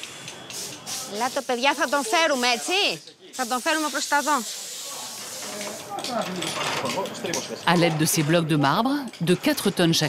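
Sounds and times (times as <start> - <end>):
steady hiss: 0.0 - 6.1.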